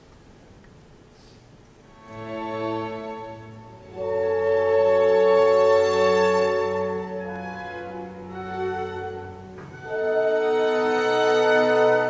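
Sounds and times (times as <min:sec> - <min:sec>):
orchestral strings sustained chords: 0:01.9 - 0:12.0.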